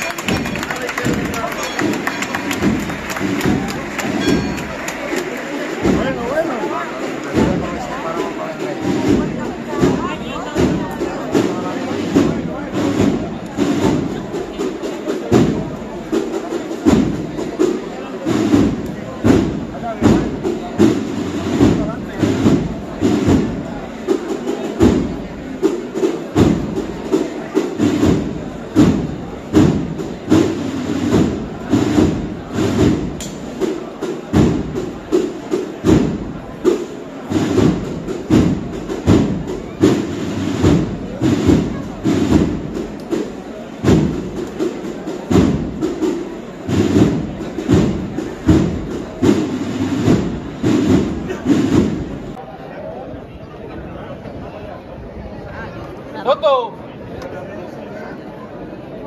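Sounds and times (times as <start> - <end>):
drums keeping steady beat: 0.0 - 52.4
marching band playing: 0.0 - 52.4.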